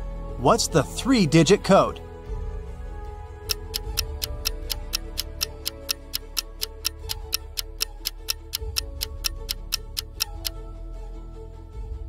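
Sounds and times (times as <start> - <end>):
background music: 0.0 - 12.0
countdown timer ticking: 3.4 - 10.6.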